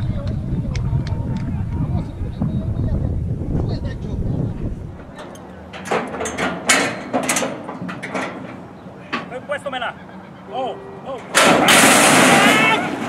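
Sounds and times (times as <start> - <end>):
metallic bangs on starting gate: 5.1 - 9.4, 11.1 - 13.0
people shouting: 9.4 - 13.0.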